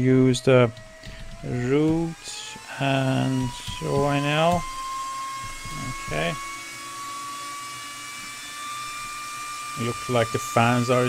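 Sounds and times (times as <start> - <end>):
cooling fans high whine: 0.0 - 11.0.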